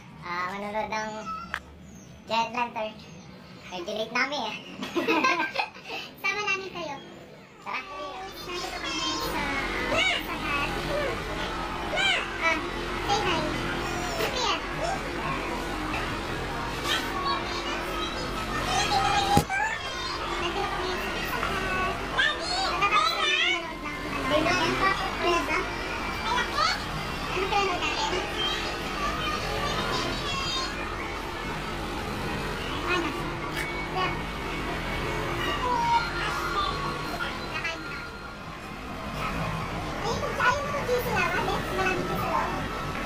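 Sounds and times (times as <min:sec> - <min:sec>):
children chattering: 0:00.0 - 0:43.0
high wavering child's voice: 0:35.3 - 0:38.2.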